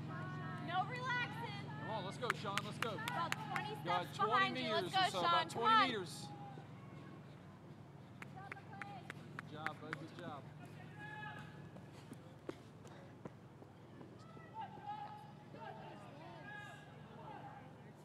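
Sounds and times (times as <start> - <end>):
distant spectators shouting: 0.0 - 18.0.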